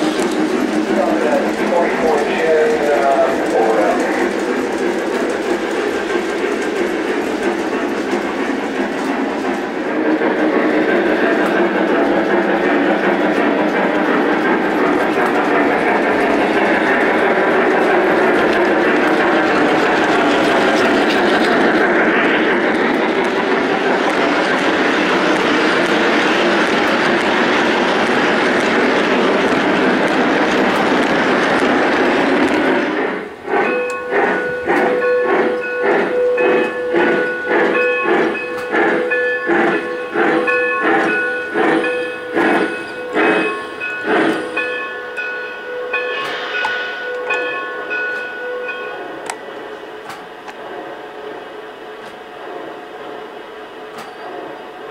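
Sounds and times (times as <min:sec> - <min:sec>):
electronic steam rushing: 0:00.0 - 0:51.2
rhythmic steam beats: 0:00.0 - 0:54.9.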